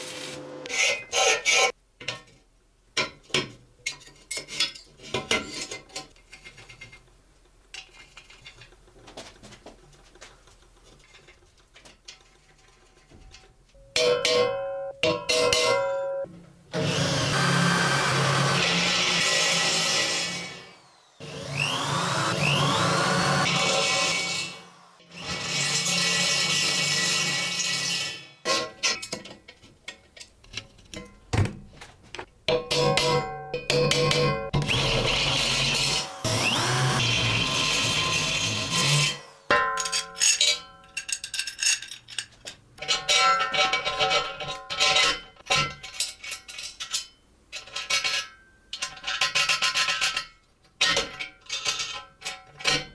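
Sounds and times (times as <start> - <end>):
power drill boring through steel: 16.7 - 28.4, 34.2 - 39.5.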